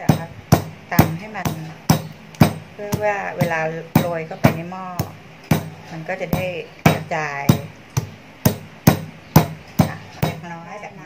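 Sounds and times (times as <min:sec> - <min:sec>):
stone pestle pounding in mortar: 0:00.0 - 0:10.5.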